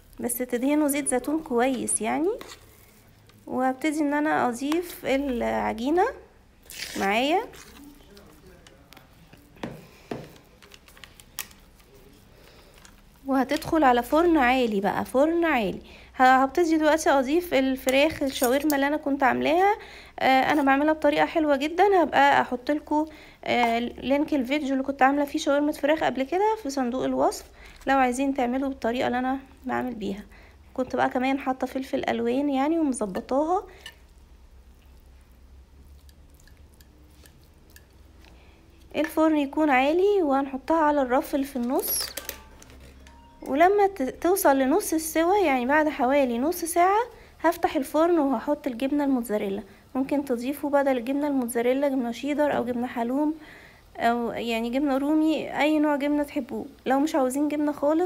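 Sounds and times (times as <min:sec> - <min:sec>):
spoon scraping dough: 0:00.0 - 0:05.8, 0:20.4 - 0:21.4, 0:35.8 - 0:39.5, 0:41.3 - 0:43.0
soft food squishes: 0:00.0 - 0:14.6, 0:32.7 - 0:52.4
low steady hum: 0:00.0 - 0:58.0.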